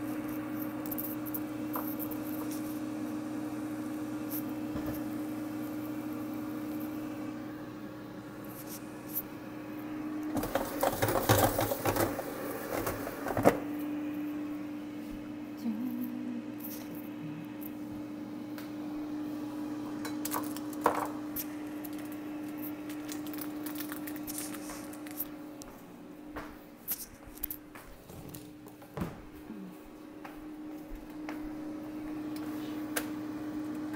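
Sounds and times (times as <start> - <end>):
appliance electrical hum: 0.0 - 33.9.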